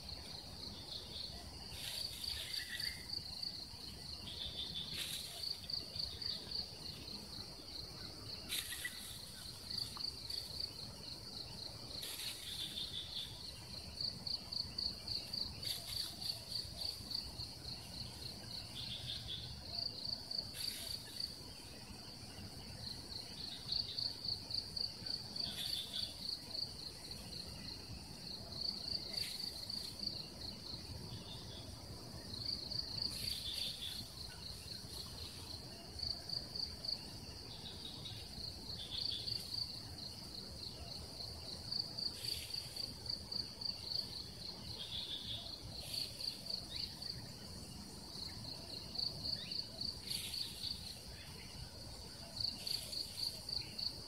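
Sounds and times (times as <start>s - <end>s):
insects chirping in pulsed trills: 0.0s - 54.0s.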